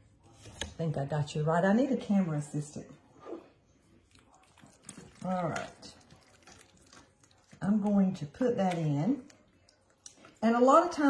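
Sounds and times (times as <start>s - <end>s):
soft wet click: 8.6s - 10.3s.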